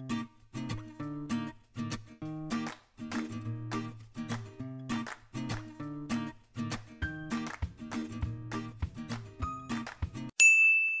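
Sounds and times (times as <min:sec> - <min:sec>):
background music with a beat: 0:00.1 - 0:10.3
bright bell-like ding: 0:10.4 - 0:11.0.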